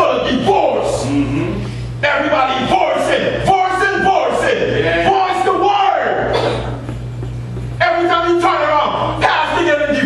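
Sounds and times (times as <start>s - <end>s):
man preaching: 0.0s - 6.6s, 7.8s - 10.0s
low electrical hum: 0.0s - 10.0s
room noise: 0.0s - 10.0s.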